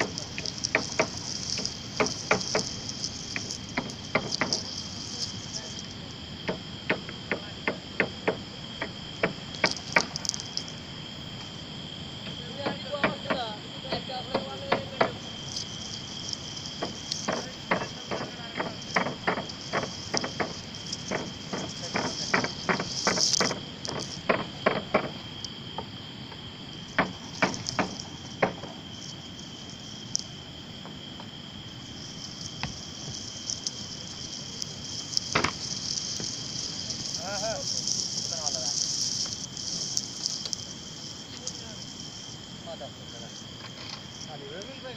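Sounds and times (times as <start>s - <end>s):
camera brushing through grass: 0.0s - 5.9s, 15.5s - 24.3s, 32.2s - 40.7s
crickets chirring: 0.0s - 44.9s.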